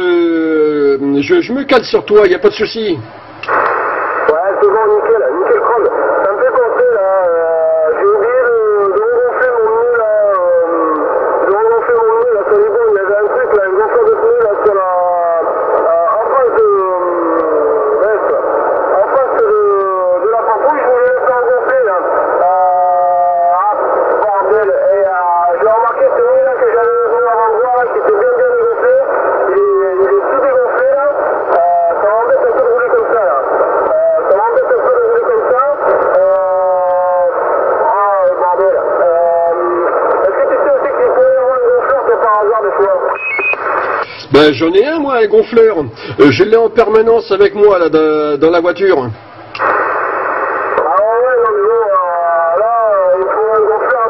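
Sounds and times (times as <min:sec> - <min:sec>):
man talking over radio: 0:00.0 - 0:54.0.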